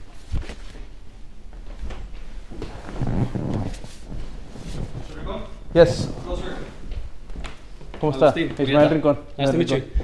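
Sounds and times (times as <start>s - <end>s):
clothing rubbing on microphone: 2.3s - 7.2s
footsteps on wooden floor: 5.8s - 8.6s.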